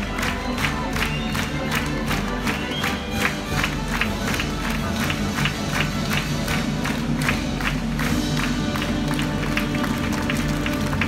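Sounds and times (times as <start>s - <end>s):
audience clapping and cheering: 0.0s - 11.0s
lively show music over speakers: 0.0s - 11.0s.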